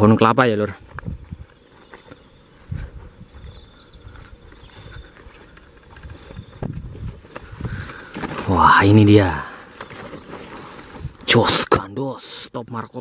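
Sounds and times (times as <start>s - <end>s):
footsteps through dry grass: 0.8s - 11.3s.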